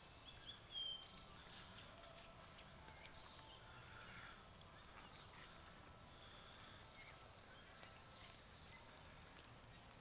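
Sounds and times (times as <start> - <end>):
high bird chirps: 0.1 - 1.9.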